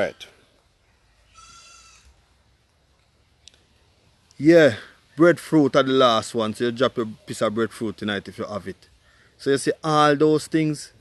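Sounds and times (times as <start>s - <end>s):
faint high-pitched animal call: 0.8s - 2.2s.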